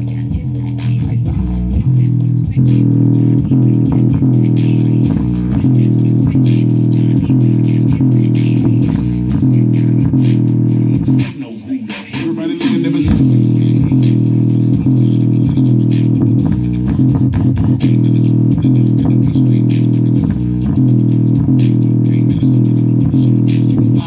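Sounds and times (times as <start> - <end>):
loud bass-heavy music from speaker: 0.0 - 24.0.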